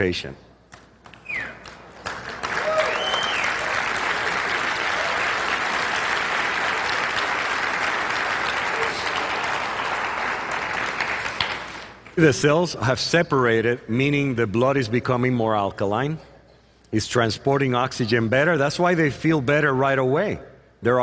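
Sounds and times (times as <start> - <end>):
audience applauding: 1.6 - 12.1.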